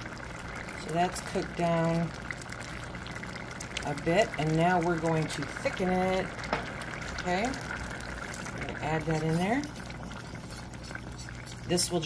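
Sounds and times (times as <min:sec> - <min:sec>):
sauce boiling in a skillet: 0:00.0 - 0:12.0.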